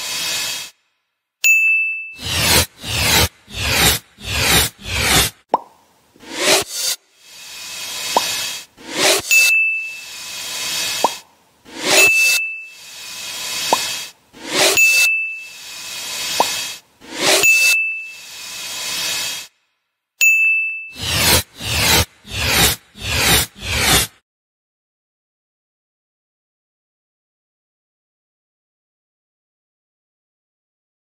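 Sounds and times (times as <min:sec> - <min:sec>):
bright ding: 0:01.4 - 0:02.2, 0:09.3 - 0:10.1, 0:20.2 - 0:21.0
whoosh: 0:06.2 - 0:15.1.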